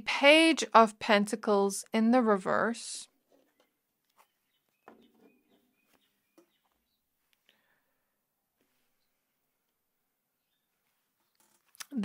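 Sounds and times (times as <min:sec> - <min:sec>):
faint bird chirps: 0:03.4 - 0:07.9, 0:10.4 - 0:11.4.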